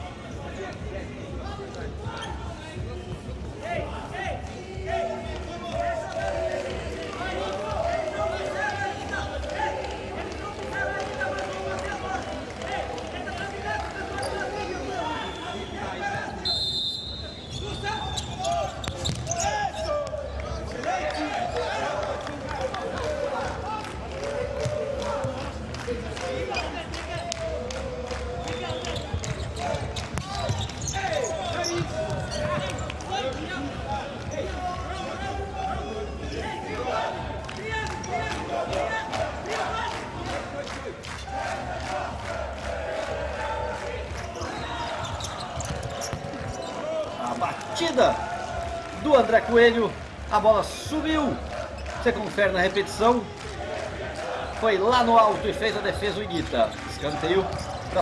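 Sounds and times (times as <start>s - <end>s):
ball kicked and bouncing: 18.8s - 19.3s, 45.6s - 46.7s
players calling out: 43.1s - 49.8s.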